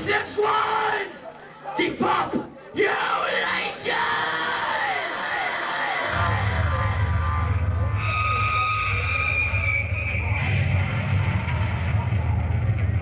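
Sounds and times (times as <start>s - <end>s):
crowd shouting: 0.0s - 12.4s
low amplified drone: 6.1s - 13.0s.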